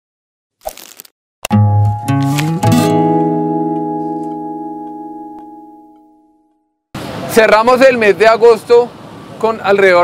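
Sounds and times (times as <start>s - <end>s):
plucked guitar chord: 1.5s - 6.6s.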